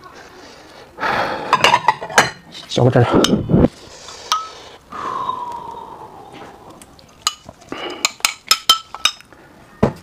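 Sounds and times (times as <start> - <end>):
spoon clinking on glass bowl: 8.0 - 9.2.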